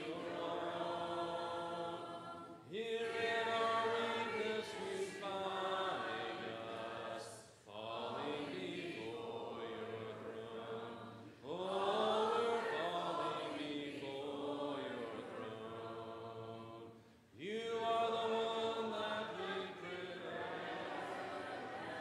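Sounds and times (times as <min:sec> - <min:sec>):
congregation singing a hymn: 0:00.0 - 0:22.0.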